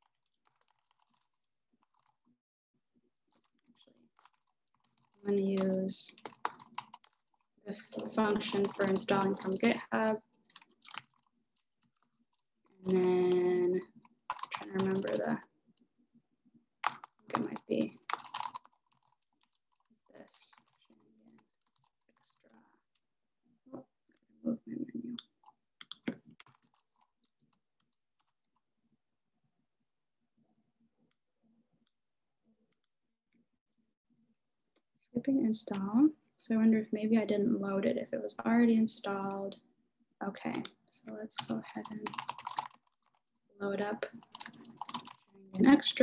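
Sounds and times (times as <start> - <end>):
typing on computer keyboard: 0.0 - 2.2, 3.3 - 15.4, 16.8 - 22.5, 25.2 - 28.6, 41.4 - 43.4, 44.0 - 46.0.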